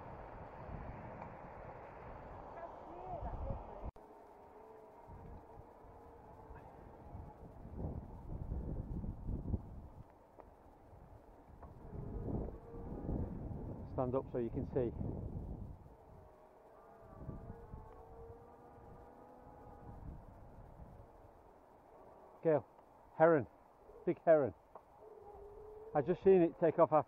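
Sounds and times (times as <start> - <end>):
wind on microphone: 0.0 - 4.0, 5.0 - 10.1, 10.8 - 16.3, 17.0 - 21.4
bicycle tyre rumble on tarmac: 0.0 - 23.8.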